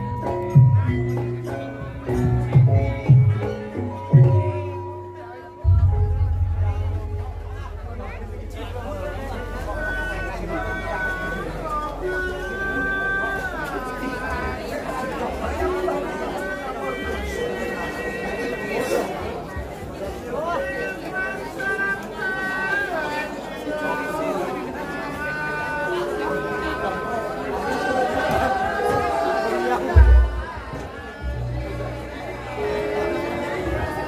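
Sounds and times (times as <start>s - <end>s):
people talking at once: 0.0s - 34.0s
voices chattering: 0.0s - 34.0s
low thuds: 30.0s - 31.0s.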